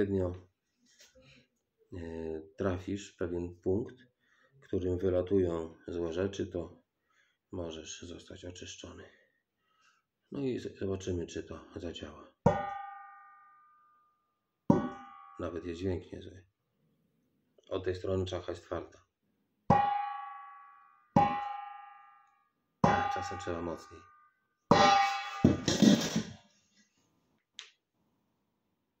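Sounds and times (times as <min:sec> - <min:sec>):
metal pan knocking head: 0:12.5 - 0:13.2, 0:14.7 - 0:15.4, 0:21.2 - 0:21.8
metal pot knocked on head: 0:12.5 - 0:13.4, 0:14.7 - 0:15.4, 0:19.7 - 0:22.0, 0:22.8 - 0:23.7, 0:24.7 - 0:26.1.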